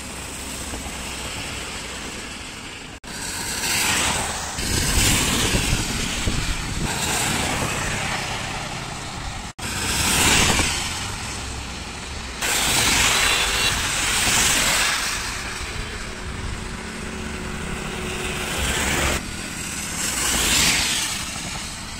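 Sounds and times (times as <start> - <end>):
tyres hissing on wet road: 0.0 - 21.9
engine rumble: 14.0 - 21.9.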